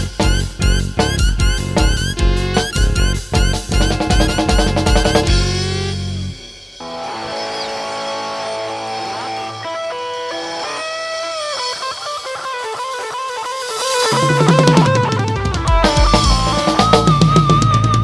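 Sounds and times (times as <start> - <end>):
bass guitar: 0.0 - 18.0
drum kit: 0.0 - 18.0
electric guitar melody with bent notes: 0.0 - 18.0.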